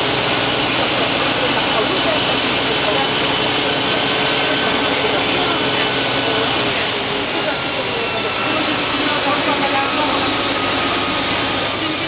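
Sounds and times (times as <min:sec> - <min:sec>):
bus diesel engine running: 0:00.0 - 0:12.0
road and tyre noise: 0:00.0 - 0:12.0.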